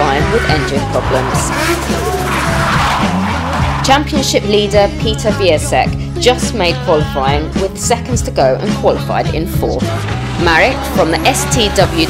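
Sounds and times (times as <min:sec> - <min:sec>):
tyre squeal: 0:00.0 - 0:03.9
car engine: 0:00.0 - 0:05.2, 0:08.6 - 0:12.0
background music: 0:00.0 - 0:12.0.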